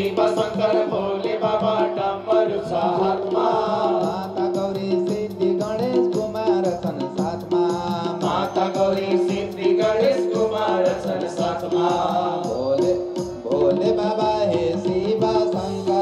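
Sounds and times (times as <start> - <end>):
devotional singing: 0.0 - 16.0
steady drum beat: 0.0 - 16.0.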